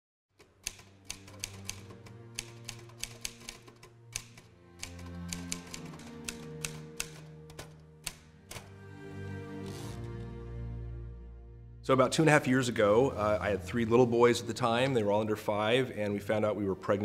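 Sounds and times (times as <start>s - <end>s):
typewriter keys clacking: 0.4s - 8.7s
soft background music: 0.4s - 17.0s.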